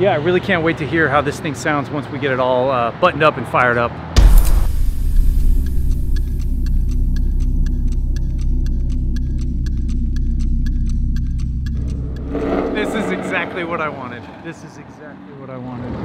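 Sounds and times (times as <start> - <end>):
light regular ticking: 4.2 - 13.1
engine idling with deep note: 4.2 - 13.4.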